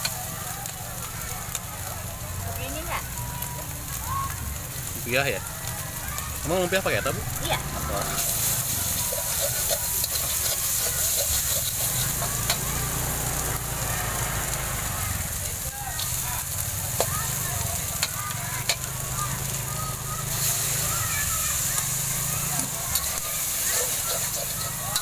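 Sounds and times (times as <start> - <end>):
food sizzling in a wok: 0.0 - 25.0
metal spatula scraping pan: 7.8 - 12.6, 22.9 - 25.0.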